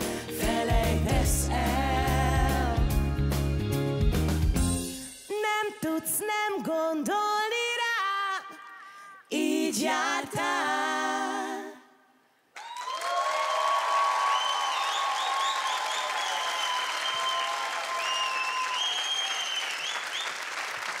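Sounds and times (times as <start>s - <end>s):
high-pitched cheering: 12.6s - 20.4s
audience applause: 12.6s - 21.0s.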